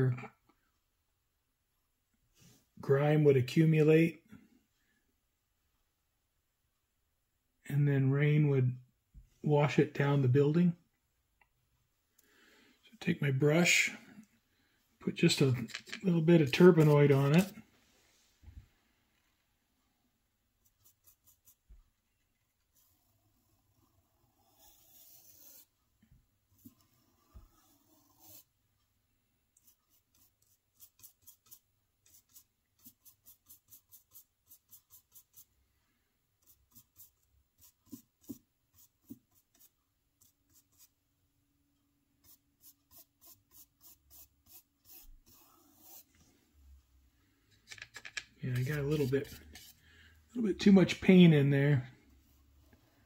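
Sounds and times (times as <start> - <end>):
paintbrush scratching on plastic: 16.1 - 17.6, 20.6 - 25.8, 26.6 - 28.5, 29.6 - 35.6, 36.4 - 41.0, 42.2 - 46.2, 48.4 - 49.8.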